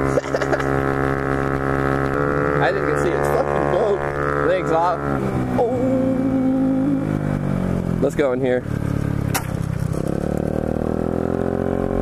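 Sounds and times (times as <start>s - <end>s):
scooter engine cruising: 0.0s - 12.0s.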